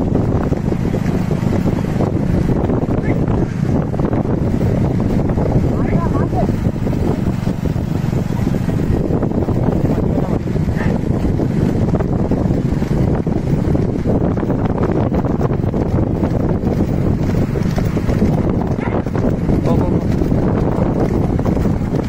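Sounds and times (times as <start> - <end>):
road noise: 0.0 - 22.0
wind buffeting microphone: 0.0 - 22.0.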